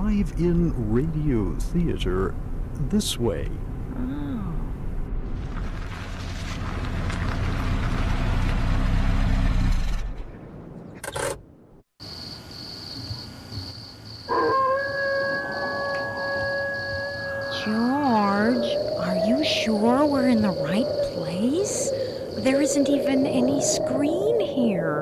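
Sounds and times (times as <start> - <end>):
car engine running: 4.8 - 10.0.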